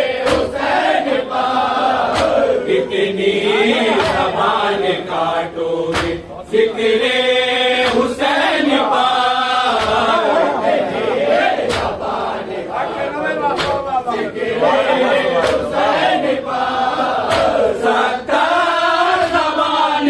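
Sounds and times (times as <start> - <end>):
men chanting in unison: 0.0 - 20.0
hands slapping chests: 0.2 - 0.9, 2.0 - 2.6, 3.9 - 4.5, 5.9 - 6.3, 7.8 - 8.2, 9.7 - 10.2, 11.5 - 12.2, 13.5 - 14.0, 15.3 - 15.9, 17.2 - 17.8.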